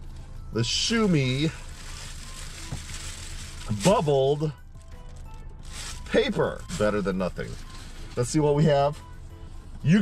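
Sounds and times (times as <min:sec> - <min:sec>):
bubble wrap crinkling: 0:00.8 - 0:09.0.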